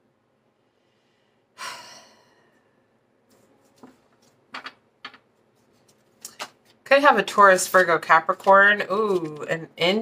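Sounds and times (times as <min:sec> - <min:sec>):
woman sighing: 0:01.6 - 0:02.6.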